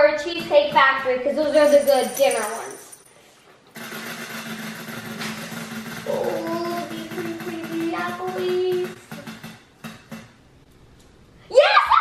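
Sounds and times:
prize wheel flapper rattling: 0:00.7 - 0:03.1.

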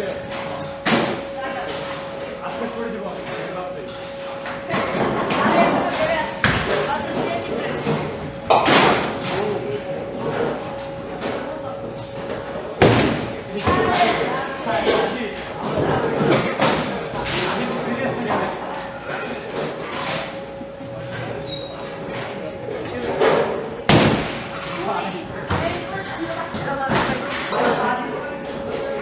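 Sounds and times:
background chatter: 0:00.0 - 0:29.0.

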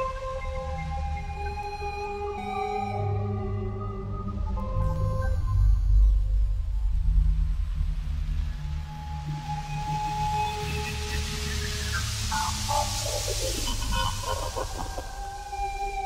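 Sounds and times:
hiss: 0:09.8 - 0:16.0.

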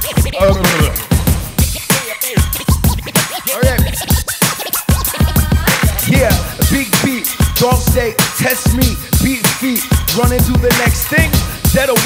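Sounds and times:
hip hop beat: 0:00.0 - 0:12.0
turntable scratching: 0:00.0 - 0:12.0.

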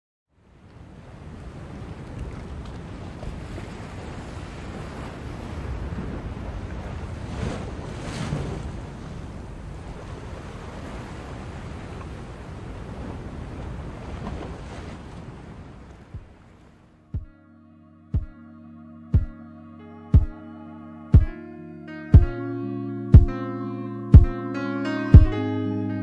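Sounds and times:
waves breaking on a beach: 0:00.4 - 0:17.3.

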